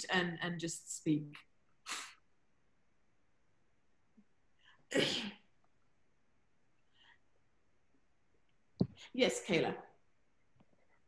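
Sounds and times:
person sneezing: 4.9s - 5.5s.

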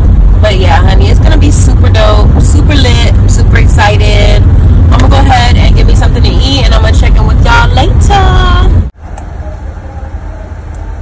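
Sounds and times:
car cabin rumble: 0.0s - 11.0s
woman talking: 0.4s - 8.8s.

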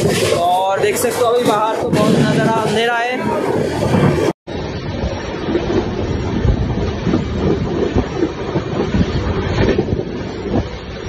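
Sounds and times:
low thumps: 0.0s - 11.0s
train wheels rumbling on track: 0.0s - 11.0s.

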